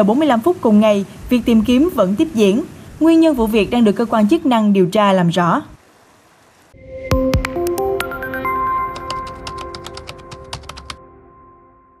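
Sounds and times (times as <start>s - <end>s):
rapid keyboard key clicks: 9.0s - 11.0s.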